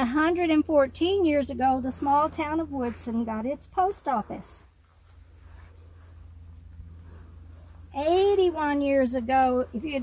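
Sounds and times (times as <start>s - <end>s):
cricket chirping: 0.0s - 10.0s
low steady hum: 0.0s - 10.0s.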